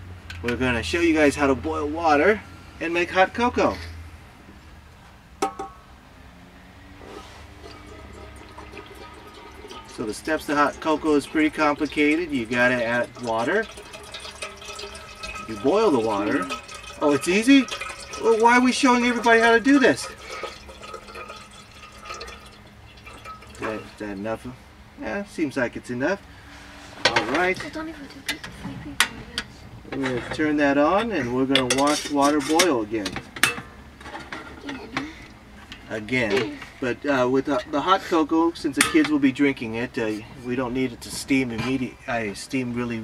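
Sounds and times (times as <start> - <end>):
water pouring into kettle: 7.0 - 24.3.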